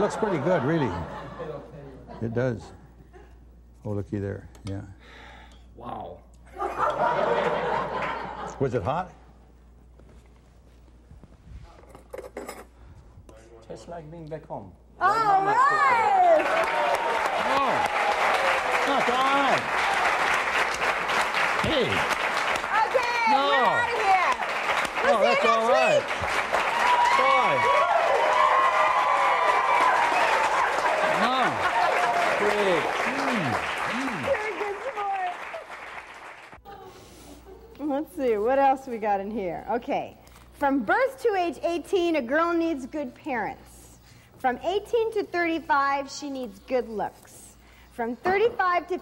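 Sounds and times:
audience applauding: 16.0 - 36.6.

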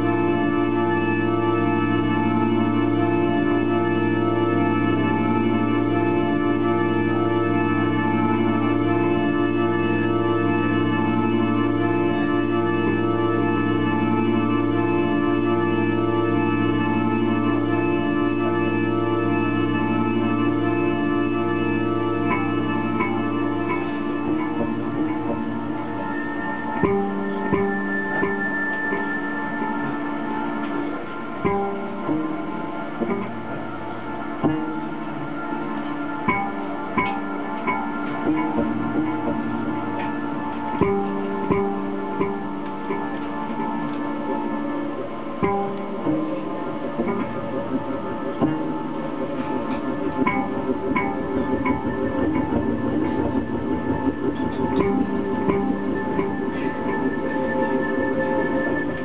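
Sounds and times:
hurdy-gurdy drone: 0.0 - 59.0.

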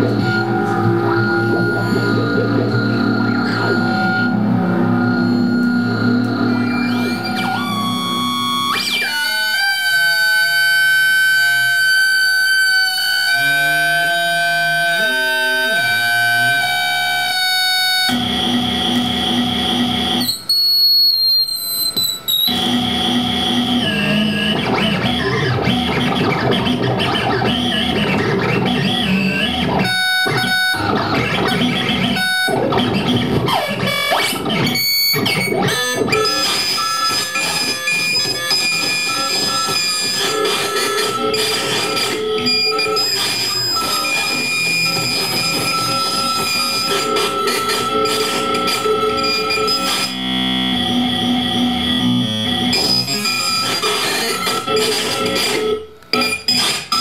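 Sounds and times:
high whistling tones: 0.0 - 18.0
electronic noise music: 0.0 - 57.0.

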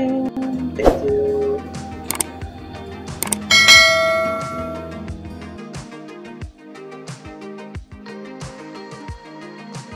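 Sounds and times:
background music: 0.0 - 9.9
quick clicks: 2.1 - 2.3, 3.2 - 3.5
bright bell ding: 3.2 - 5.0.

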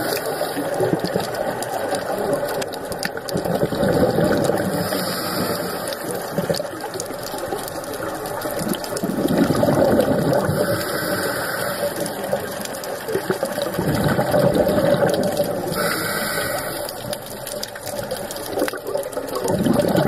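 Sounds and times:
regulator bubbling exhalation: 0.0 - 20.0
regulator inhalation hiss: 4.8 - 6.0, 10.6 - 12.1, 15.8 - 16.9.

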